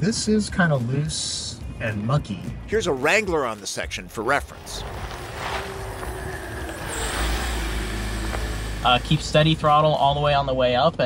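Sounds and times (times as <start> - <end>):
vehicle engine rumbling: 2.7 - 11.0.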